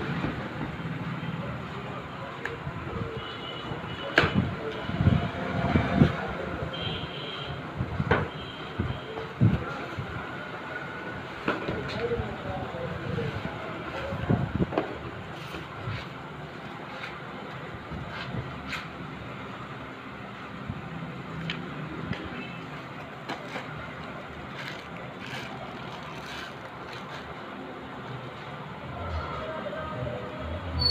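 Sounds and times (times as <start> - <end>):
paper and plastic rustling: 22.7 - 27.4.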